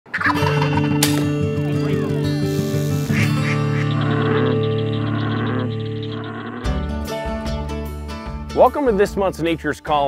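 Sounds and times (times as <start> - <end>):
turkey gobbling: 0.1 - 0.9, 3.1 - 6.7
intro music with sustained tones: 0.2 - 8.4.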